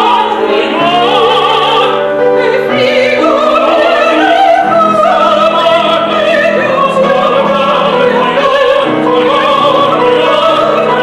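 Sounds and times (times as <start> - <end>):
piano accompaniment: 0.0 - 11.0
soprano and tenor singing: 0.0 - 11.0.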